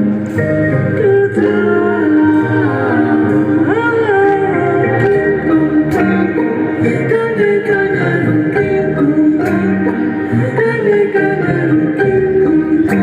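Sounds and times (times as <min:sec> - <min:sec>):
live music with singing: 0:00.0 - 0:13.0.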